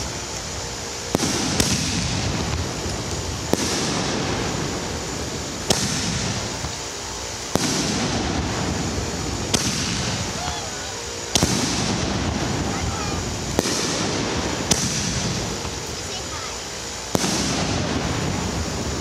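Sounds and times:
firework shells bursting: 0.0 - 19.0
steady wash of noise: 0.0 - 19.0.

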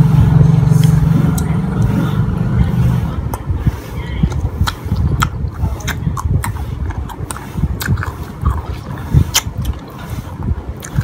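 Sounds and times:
motor engine droning: 0.0 - 3.7
crunchy fruit biting and chewing: 4.3 - 10.1, 10.8 - 11.0.

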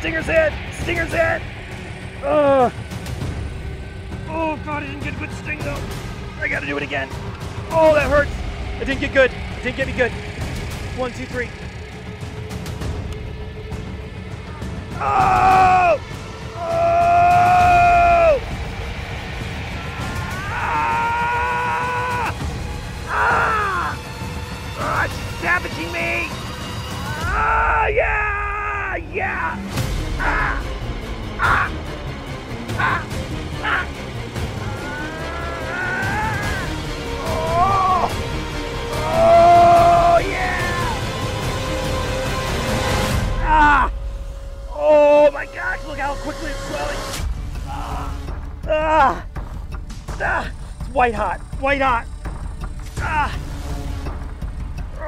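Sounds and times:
background music with drone: 0.0 - 55.0
man screaming in pain: 15.0 - 16.0, 16.6 - 18.4, 19.9 - 22.4, 23.1 - 24.0, 27.0 - 29.6, 31.4 - 31.8, 32.8 - 33.9, 34.6 - 38.2, 39.0 - 41.1, 43.4 - 44.0, 47.7 - 49.2, 50.2 - 50.5.

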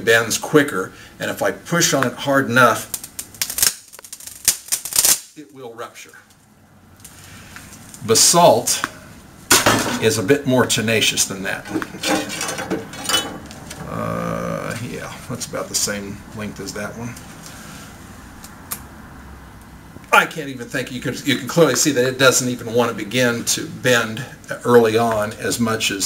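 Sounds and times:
low room hum: 0.0 - 26.0
faint handling noise: 11.5 - 14.0.

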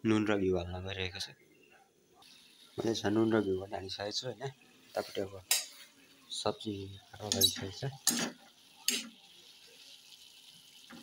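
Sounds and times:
pots clattering: 7.2 - 9.2.

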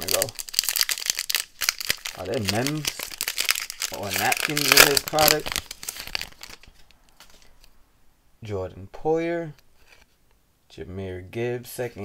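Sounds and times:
foil wrapper crinkling: 0.0 - 7.5.

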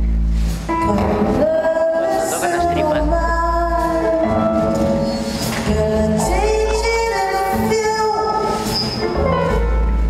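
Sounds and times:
big band playing live: 0.0 - 10.0.

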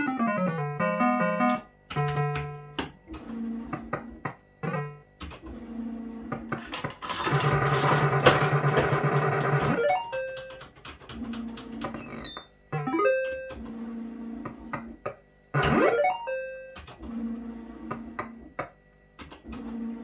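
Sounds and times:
fruit machine electronic tunes: 0.0 - 2.8, 11.8 - 13.7.

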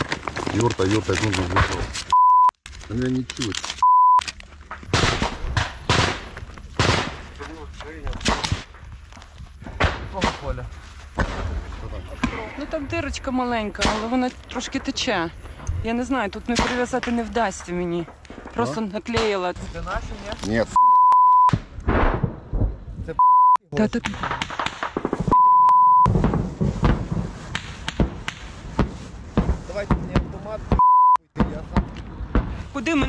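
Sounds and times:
explosion crack and rumble: 0.0 - 2.1, 4.6 - 20.5, 21.5 - 23.2, 23.8 - 25.4, 26.1 - 30.8, 31.4 - 33.0
censor bleep: 2.1 - 2.6, 3.8 - 4.2, 20.8 - 21.6, 23.2 - 23.6, 25.3 - 26.1, 30.8 - 31.2
gunshots: 4.9 - 7.3, 8.2 - 8.7, 24.0 - 25.4.

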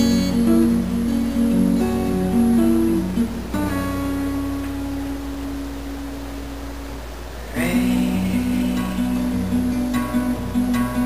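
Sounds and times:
acoustic guitar note ringing: 0.0 - 11.0
low steady hum: 0.0 - 11.0.

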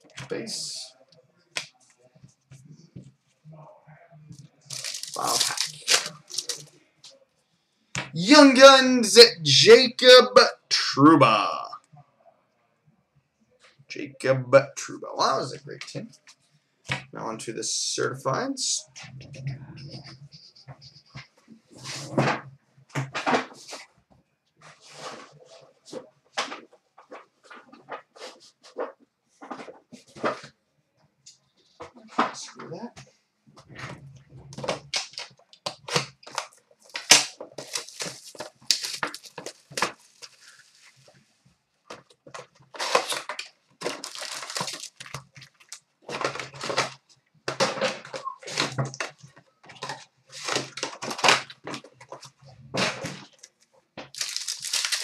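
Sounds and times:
card pack wrapper tearing: 4.7 - 6.6, 35.8 - 40.4, 42.8 - 45.8, 54.1 - 55.0.

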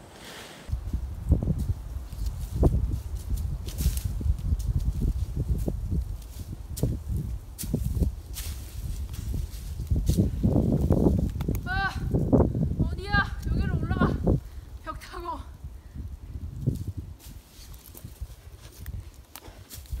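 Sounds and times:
footsteps on dry leaves and rocks: 1.4 - 11.5, 16.4 - 20.0.

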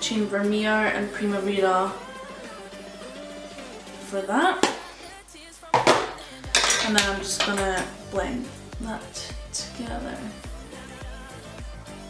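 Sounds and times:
hard object clinking on surface: 5.8 - 7.9.

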